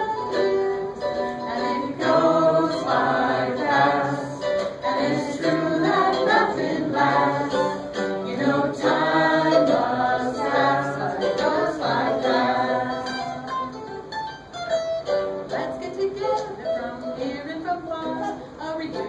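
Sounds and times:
group singing in unison: 0.3s - 13.7s.

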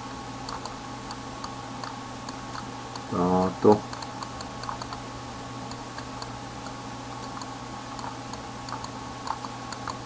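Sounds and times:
faint light ticks: 0.5s - 3.1s, 5.7s - 10.0s.

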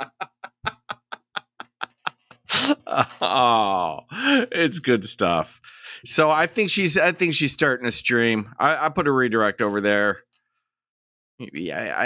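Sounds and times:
man laughing hard: 0.0s - 4.6s.

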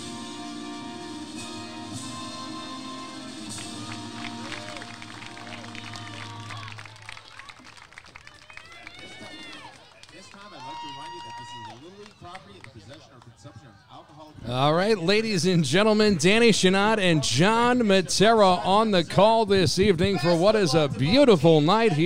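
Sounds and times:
anthem over loudspeakers: 0.0s - 7.0s, 14.4s - 22.0s
crowd cheering and shouting: 3.3s - 7.6s, 8.3s - 12.6s.

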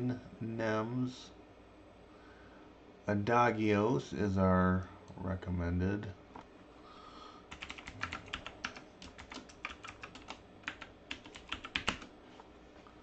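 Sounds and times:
keyboard typing clicks: 7.5s - 12.1s.

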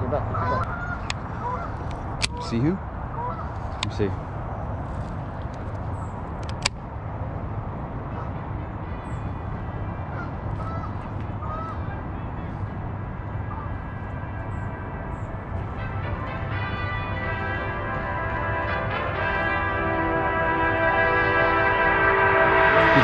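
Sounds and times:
low outdoor background noise: 0.0s - 23.0s.

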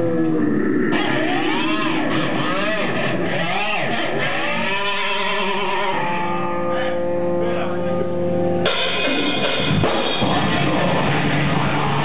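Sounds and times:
distorted electric guitar swoops: 0.0s - 12.0s.

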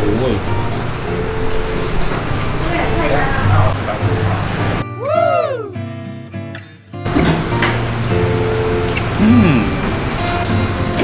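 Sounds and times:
eatery room noise with hum: 0.0s - 5.7s, 7.1s - 11.0s.

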